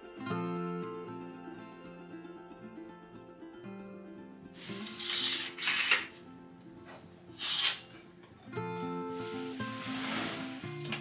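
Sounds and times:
acoustic guitar music: 0:00.0 - 0:11.0
window rasping open: 0:04.7 - 0:06.1.

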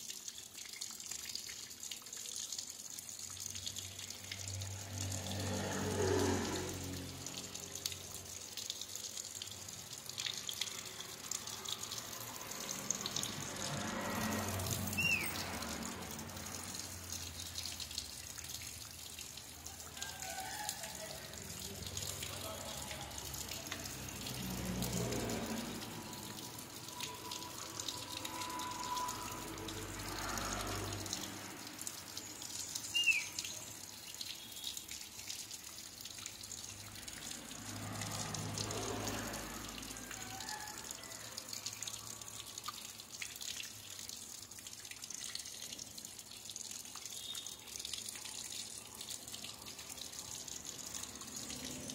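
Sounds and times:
water trickling and dripping: 0:00.0 - 0:51.9
short high bird chirps: 0:15.0 - 0:15.3, 0:32.9 - 0:33.4.

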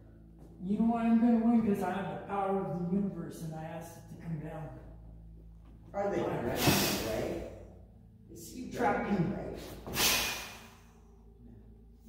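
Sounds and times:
faint low hum: 0:00.0 - 0:12.0
person hissing breathily: 0:06.5 - 0:07.4, 0:09.8 - 0:11.1.

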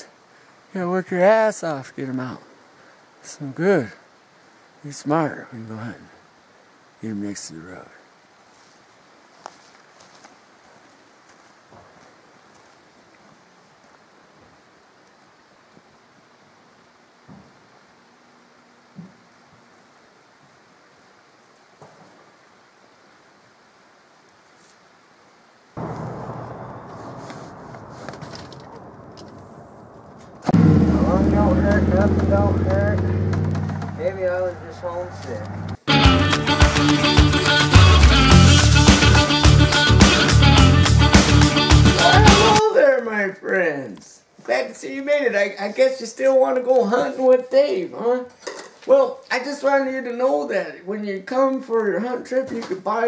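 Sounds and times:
steady rumbling noise: 0:25.8 - 0:35.8
rock music with guitar: 0:35.9 - 0:42.6.

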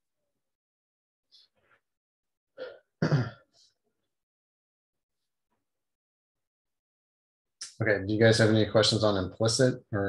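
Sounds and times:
person clearing throat: 0:02.6 - 0:03.4.

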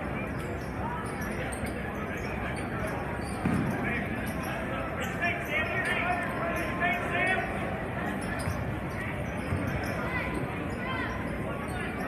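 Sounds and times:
crowd voices: 0:00.0 - 0:12.0
sneakers squeaking: 0:00.1 - 0:12.0.

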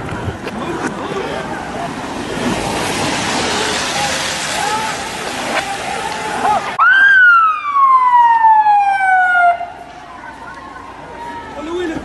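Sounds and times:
siren sliding down in pitch: 0:06.8 - 0:09.7.

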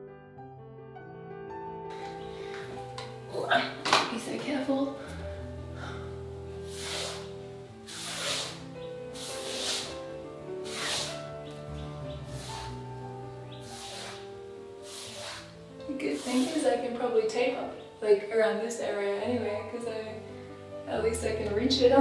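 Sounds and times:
soft background music: 0:00.0 - 0:22.0
paintbrush swishing on wall: 0:06.6 - 0:16.9.

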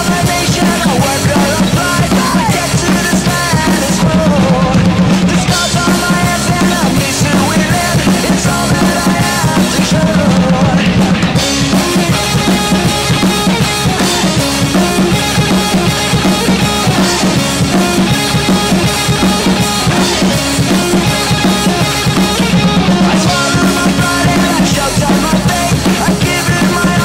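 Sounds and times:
drum kit playing: 0:00.0 - 0:27.0
recorded rock track: 0:00.0 - 0:27.0.

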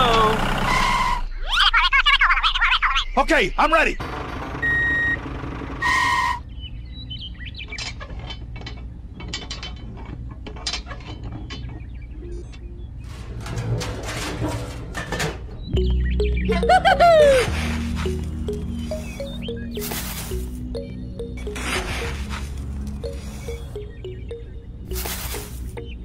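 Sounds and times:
short electronic beep: 0:15.8 - 0:25.9
background music: 0:15.8 - 0:26.0
warbling chirp sound effects: 0:15.8 - 0:26.0.

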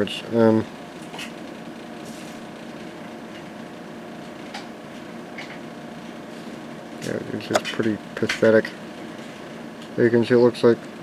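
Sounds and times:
cooling fan hum and hiss: 0:00.0 - 0:11.0.

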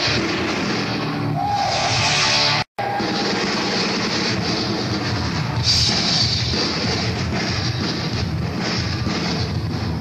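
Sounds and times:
distorted electric guitars: 0:00.0 - 0:10.0
drums: 0:00.0 - 0:10.0.

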